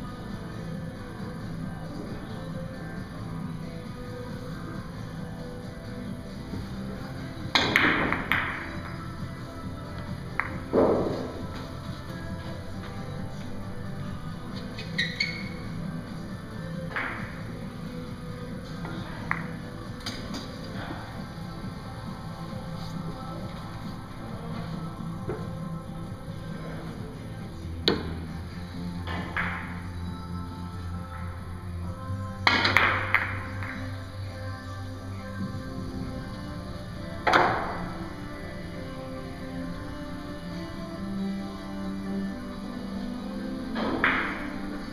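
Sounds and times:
background music: 0.0s - 44.9s
billiard balls clacking: 5.4s - 25.6s, 29.0s - 29.8s, 32.4s - 33.9s, 36.4s - 38.7s, 43.5s - 44.9s.

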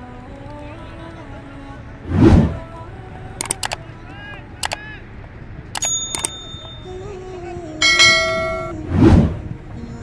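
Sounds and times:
quick clicks: 3.4s - 3.8s, 4.6s - 4.8s, 5.7s - 6.7s
bright bell chime: 5.8s - 7.1s, 7.8s - 8.8s.

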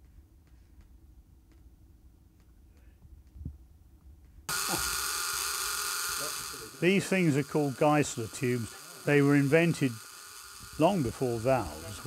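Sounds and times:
electrical hiss and buzz: 4.5s - 12.0s.

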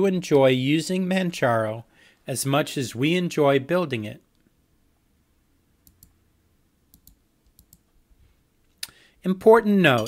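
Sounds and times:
computer mouse clicks: 5.8s - 6.2s, 6.9s - 7.9s.

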